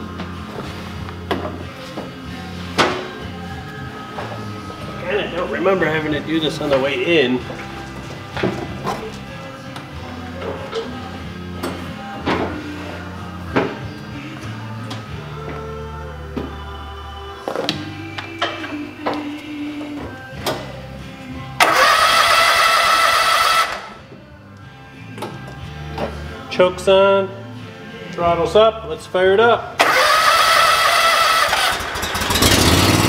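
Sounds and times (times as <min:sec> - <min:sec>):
background music with low notes: 0:00.0 - 0:33.0.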